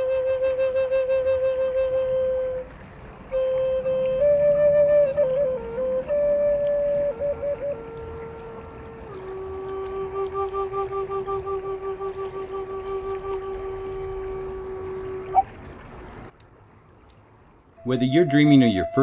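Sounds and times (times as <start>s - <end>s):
wooden flute melody: 0.0s - 15.8s, 17.7s - 19.0s
running river water: 0.0s - 19.0s.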